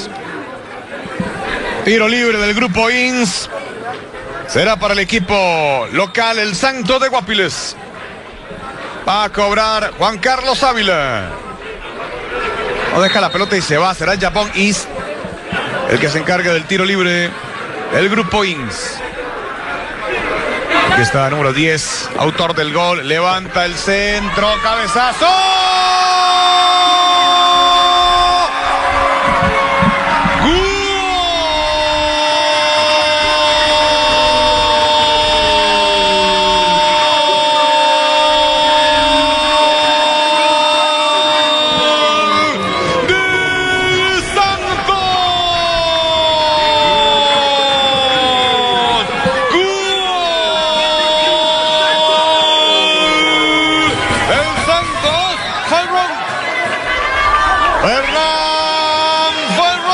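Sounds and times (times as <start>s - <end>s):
commentator shouting goal cry: 30.3s - 56.2s.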